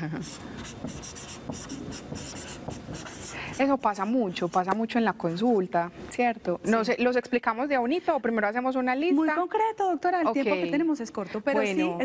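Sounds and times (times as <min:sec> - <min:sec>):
marker scratching on whiteboard: 0:00.1 - 0:05.5.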